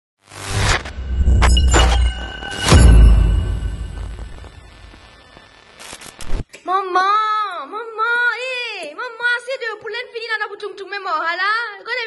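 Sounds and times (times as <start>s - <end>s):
harsh shattering static: 0.2s - 6.5s.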